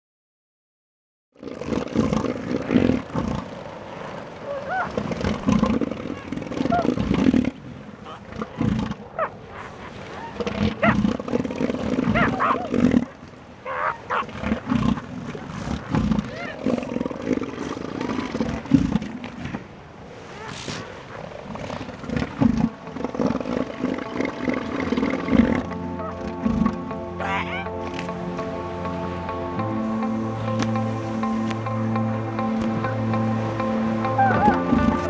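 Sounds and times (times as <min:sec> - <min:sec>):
water splashing: 0:01.6 - 0:35.0
elephant seals calling: 0:01.8 - 0:30.2, 0:30.8 - 0:35.0.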